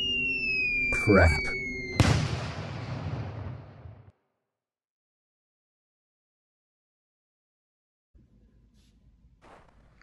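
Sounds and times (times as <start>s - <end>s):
loud blast with rumbling tail: 1.9s - 4.1s.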